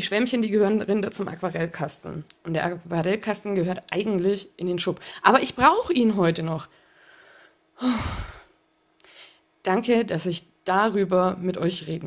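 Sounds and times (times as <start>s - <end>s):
woman sighing: 7.8s - 9.3s.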